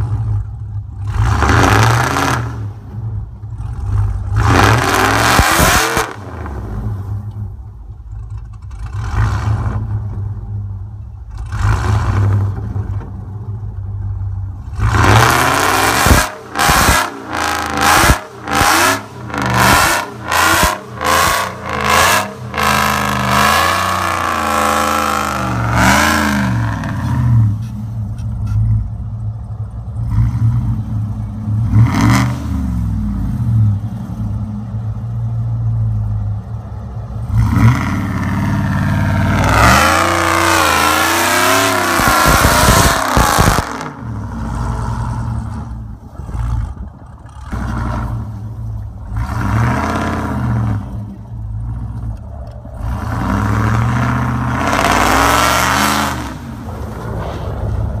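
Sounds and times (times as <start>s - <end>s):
truck engine revving hard: 1.0s - 7.2s, 8.8s - 10.3s, 11.3s - 12.9s, 14.6s - 27.7s, 30.0s - 34.4s, 37.2s - 51.9s, 52.8s - 58.0s.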